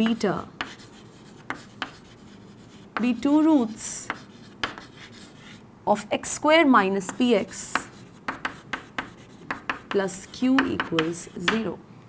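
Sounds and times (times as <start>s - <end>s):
chalk tapping on chalkboard: 0.0s - 3.2s, 4.0s - 5.6s, 7.0s - 11.7s
chalk scratching on chalkboard: 0.0s - 5.6s, 7.0s - 11.6s.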